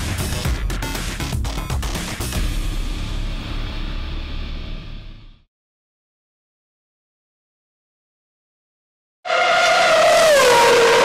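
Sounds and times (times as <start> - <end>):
racing car engine revving: 9.3 - 11.0.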